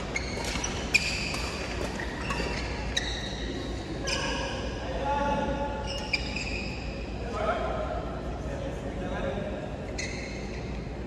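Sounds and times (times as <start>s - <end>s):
shoe squeaking on court floor: 0.0s - 4.7s, 5.8s - 7.2s, 9.9s - 10.9s
sports hall noise: 0.0s - 11.0s.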